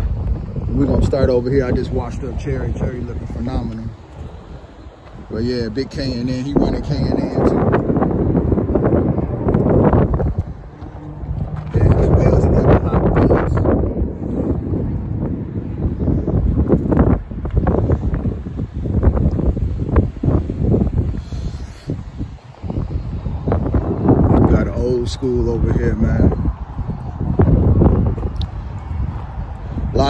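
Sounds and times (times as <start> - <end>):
wind buffeting microphone: 0.0 - 30.0.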